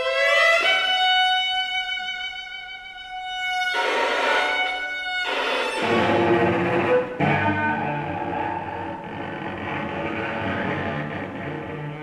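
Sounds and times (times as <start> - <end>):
bowed strings sustained cluster: 5.7 - 12.0.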